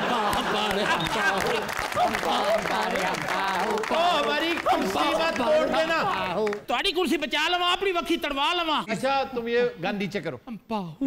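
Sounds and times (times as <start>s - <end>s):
audience applauding: 0.0s - 6.7s
voices: 0.0s - 6.7s.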